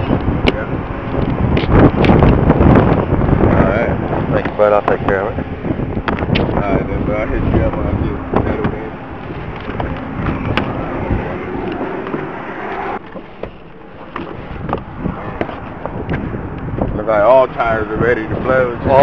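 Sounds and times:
roadside traffic: 0:00.0 - 0:19.0
wind noise: 0:00.0 - 0:19.0
camera knocks and rustling: 0:08.6 - 0:10.8, 0:13.0 - 0:16.2.

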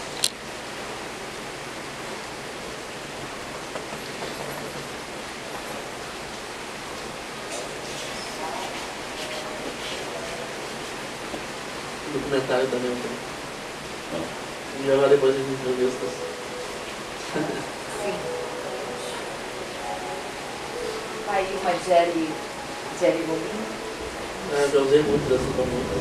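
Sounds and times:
steady rain hiss: 0:00.0 - 0:26.0.

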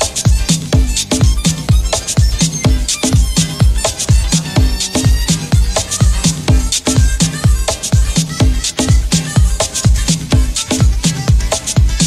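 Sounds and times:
hi-hats ticking: 0:00.0 - 0:12.0
kick drum beat: 0:00.0 - 0:12.0.

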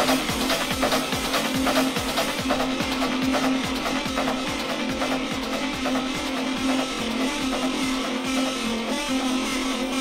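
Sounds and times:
steady droning synth tone: 0:00.0 - 0:10.0
techno kick drum: 0:00.0 - 0:10.0.

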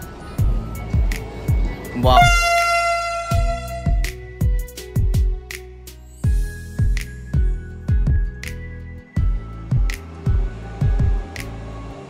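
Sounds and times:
music with steady beat: 0:00.0 - 0:12.0
train horn: 0:02.0 - 0:04.2.

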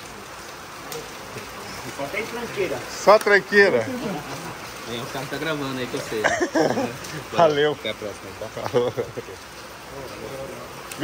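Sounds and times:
steady rain falling: 0:00.0 - 0:11.0.

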